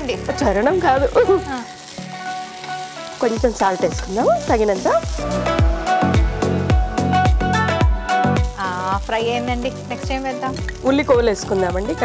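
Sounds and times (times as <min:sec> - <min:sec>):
women talking: 0:00.0 - 0:01.8, 0:03.2 - 0:05.1, 0:08.6 - 0:12.0.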